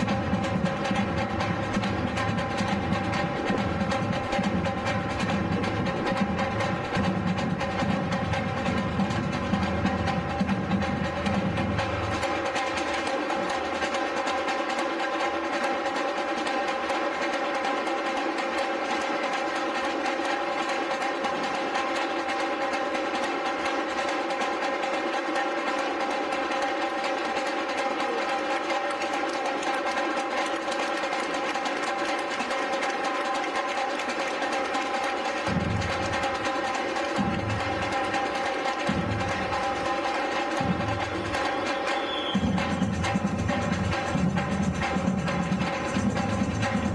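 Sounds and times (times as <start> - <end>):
snare and high drums rattling: 0.0 - 46.9.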